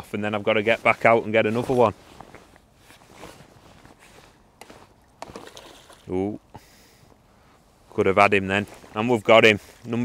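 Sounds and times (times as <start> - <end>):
fishing pole knocks and clicks: 4.6 - 6.0.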